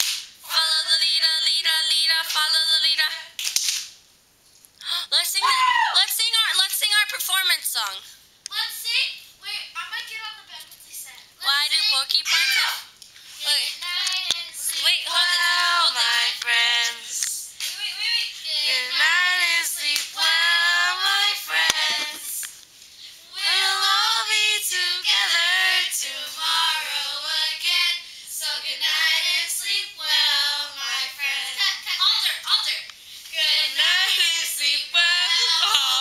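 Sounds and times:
girls singing without accompaniment: 0.4 - 3.3, 13.4 - 22.5, 23.1 - 32.0, 33.2 - 36.0.

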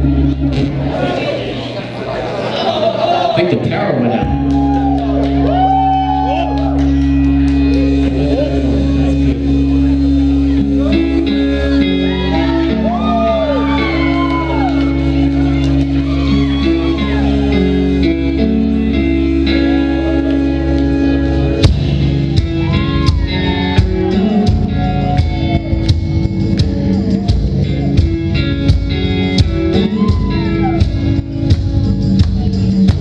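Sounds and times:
keyboard chords: 4.0 - 33.0
drum beat: 21.6 - 33.0.

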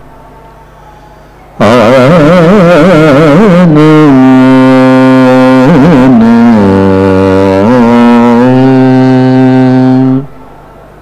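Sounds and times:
faint background hum: 0.0 - 11.0
man singing long note: 1.6 - 10.4.

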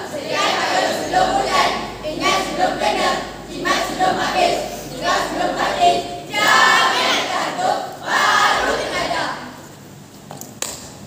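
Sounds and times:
group of voices singing: 0.0 - 9.6.

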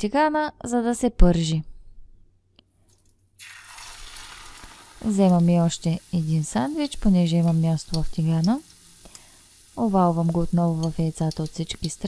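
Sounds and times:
oil sizzling in a frying pan: 3.4 - 12.0.

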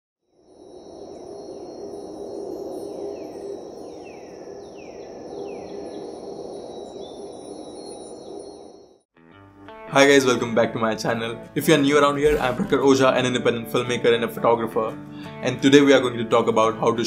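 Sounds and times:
crickets trilling: 0.2 - 9.0
falling chirps: 0.4 - 9.0.

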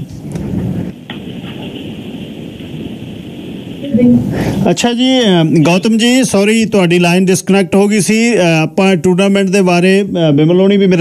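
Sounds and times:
rough telephone line noise: 0.0 - 11.0.

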